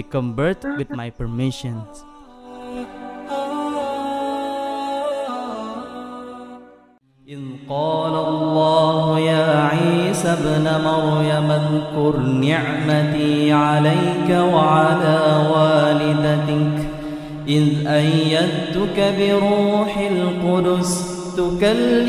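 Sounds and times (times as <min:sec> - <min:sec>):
man chanting melodically: 0:00.0 - 0:02.2, 0:07.3 - 0:22.0.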